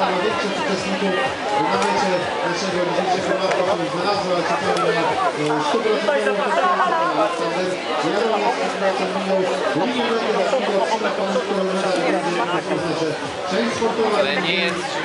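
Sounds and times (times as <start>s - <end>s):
people talking at once: 0.0s - 15.0s.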